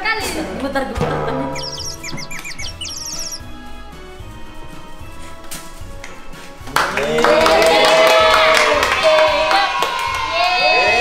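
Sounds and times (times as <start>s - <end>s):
background music: 0.0s - 11.0s
high bird chirps: 1.3s - 3.6s.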